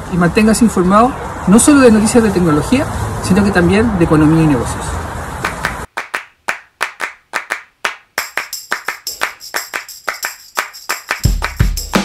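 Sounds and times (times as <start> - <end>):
outdoor background noise: 0.0 - 6.9
clap-like percussion: 5.4 - 12.0.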